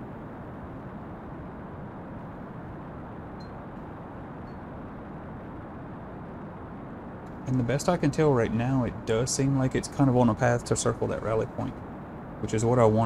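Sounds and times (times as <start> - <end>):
low rushing background noise: 0.0 - 13.0.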